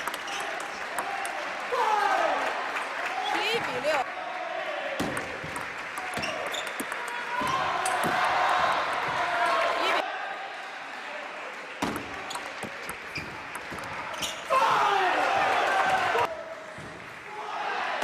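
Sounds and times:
voices in a hall: 0:00.0 - 0:18.0
table tennis ball clicking: 0:05.1 - 0:08.1, 0:11.8 - 0:14.3.

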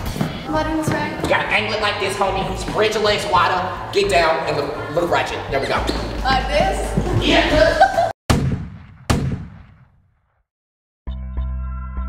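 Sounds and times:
gunshots with long echo: 0:08.3 - 0:09.9.

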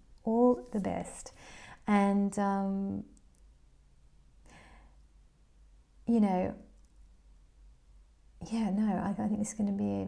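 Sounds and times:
woman breathing softly: 0:01.3 - 0:01.9, 0:04.4 - 0:05.1.

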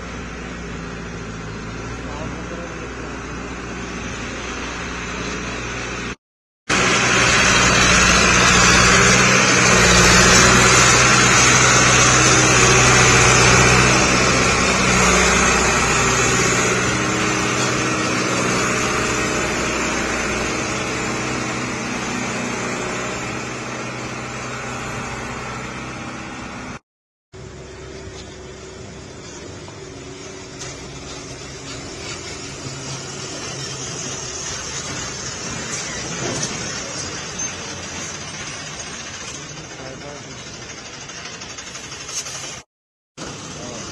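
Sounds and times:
heavy truck engine running: 0:00.0 - 0:26.8, 0:27.4 - 0:43.9.

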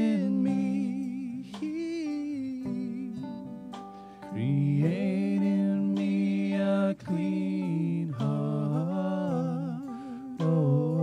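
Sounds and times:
man singing slow melody: 0:00.0 - 0:11.0.

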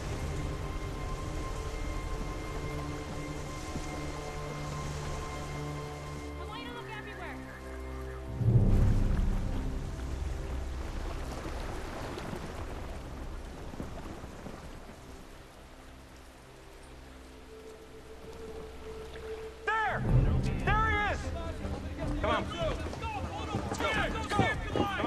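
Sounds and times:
sustained low orchestral notes: 0:00.0 - 0:13.6, 0:15.5 - 0:24.8
rain-like hiss: 0:00.0 - 0:25.0.

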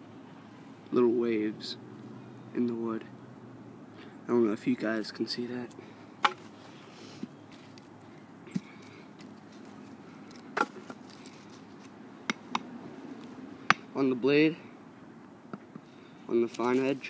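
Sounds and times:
knife striking wood: 0:06.2 - 0:06.4, 0:10.6 - 0:11.0.

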